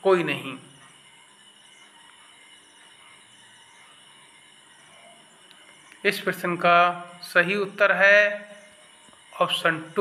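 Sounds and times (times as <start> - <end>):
thin high-pitched tones: 0.0 - 10.0.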